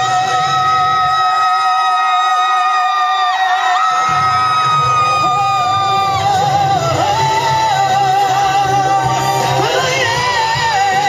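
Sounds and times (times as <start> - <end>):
backing music through speakers: 0.0 - 11.0
man singing pop ballad: 0.0 - 11.0.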